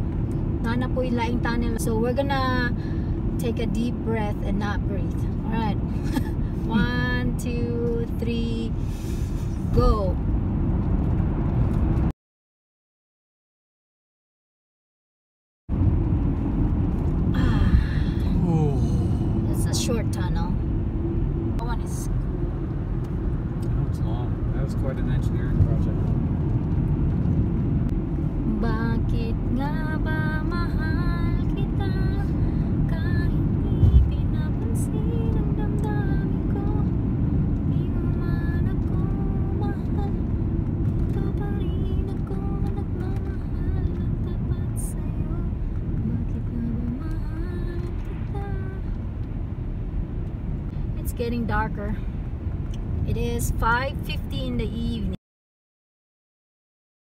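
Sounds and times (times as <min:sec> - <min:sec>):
car cabin road rumble: 0:00.0 - 0:12.1, 0:15.7 - 0:55.2
low thump: 0:33.8 - 0:34.2.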